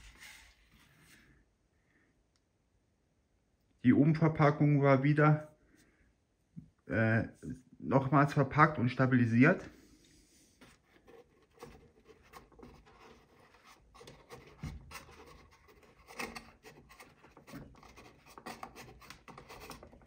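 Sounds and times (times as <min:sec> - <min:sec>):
cardboard box rustling and scraping: 0:00.0 - 0:01.3, 0:10.6 - 0:20.0.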